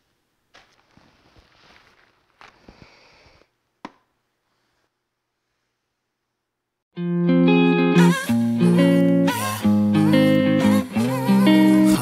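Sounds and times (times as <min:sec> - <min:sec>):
headset rustling: 0:00.5 - 0:03.5.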